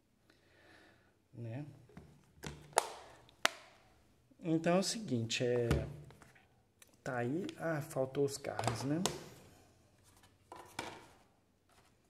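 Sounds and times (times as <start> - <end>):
plastic case clicking shut: 2.4 - 3.7.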